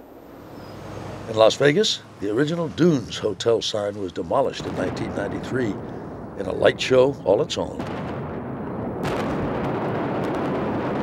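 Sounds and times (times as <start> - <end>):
loud rumble with crackling pops: 3.6 - 11.0
explosive blast: 4.5 - 11.0.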